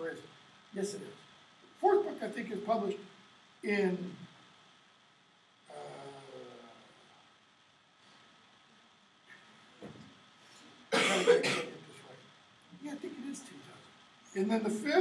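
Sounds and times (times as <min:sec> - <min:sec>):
person coughing: 0:10.9 - 0:11.8.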